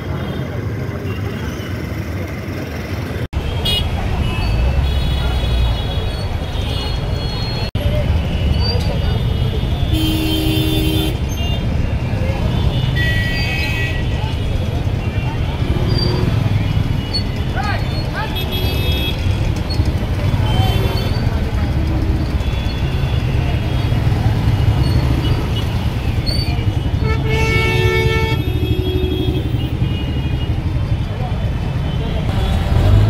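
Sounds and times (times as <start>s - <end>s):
traffic engines rumbling: 0.0s - 33.0s
vehicle horns honking: 3.4s - 11.7s, 12.5s - 19.5s, 22.3s - 30.7s, 31.8s - 33.0s
crowd of voices talking: 11.0s - 28.0s.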